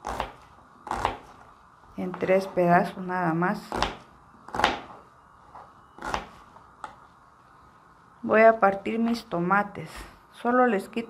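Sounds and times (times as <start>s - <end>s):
knife cutting onion on board: 0.0s - 1.4s, 3.6s - 5.0s, 6.0s - 6.4s.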